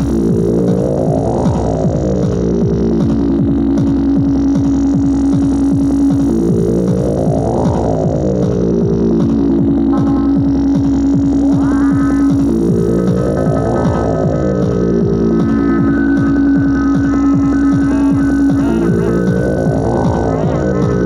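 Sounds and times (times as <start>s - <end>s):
fast percussive drum machine hits: 0.0s - 21.0s
held low drone: 0.0s - 21.0s
sweeping synth sound: 9.6s - 21.0s.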